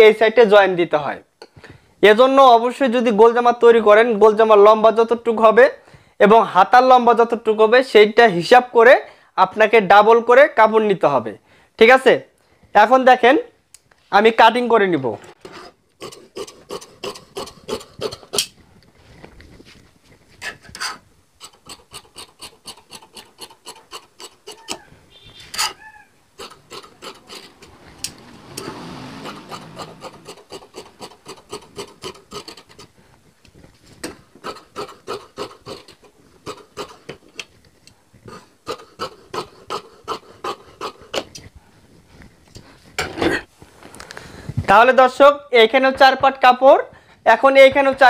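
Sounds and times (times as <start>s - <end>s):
shears clicking: 21.4s - 25.8s, 26.4s - 32.9s, 34.0s - 41.4s
shears snipping fabric: 26.4s - 32.9s, 34.0s - 37.5s.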